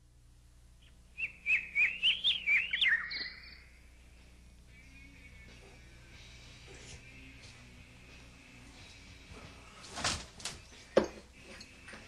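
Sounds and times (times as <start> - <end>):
faint low hum: 0.0 - 12.0
bird chirping: 0.8 - 4.0, 4.7 - 6.4.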